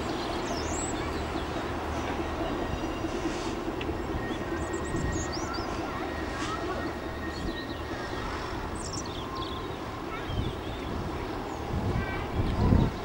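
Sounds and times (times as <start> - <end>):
distant diesel locomotive rumble: 0.0 - 13.0.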